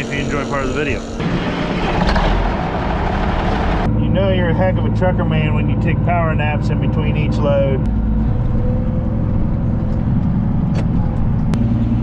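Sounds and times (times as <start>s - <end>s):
exhaust rushing noise: 0.0s - 12.0s
tractor diesel engine running: 0.0s - 12.0s.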